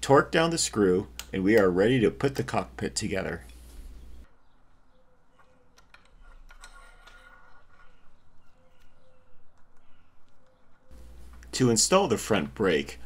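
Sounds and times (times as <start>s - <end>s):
bird calling softly: 3.8s - 11.6s.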